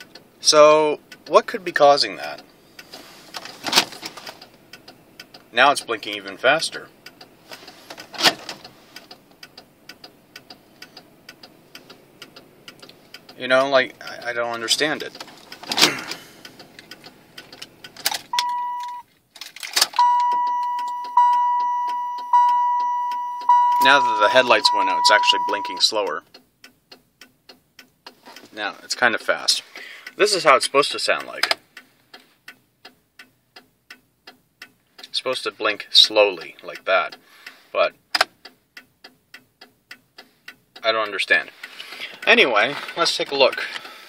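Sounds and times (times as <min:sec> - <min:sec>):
turn signal flasher clicking: 0:00.0 - 0:44.0
car warning chime: 0:18.3 - 0:19.1, 0:19.9 - 0:26.2
brief tone: 0:18.4 - 0:19.0, 0:20.0 - 0:25.8.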